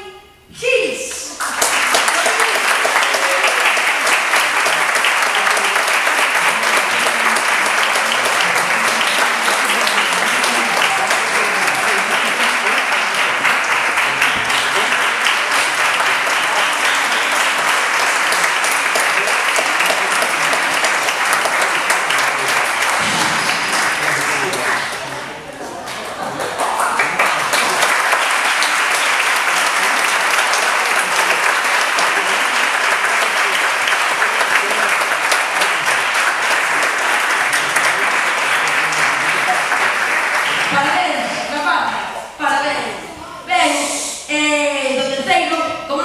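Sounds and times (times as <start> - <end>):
audience applauding: 1.3 - 41.6.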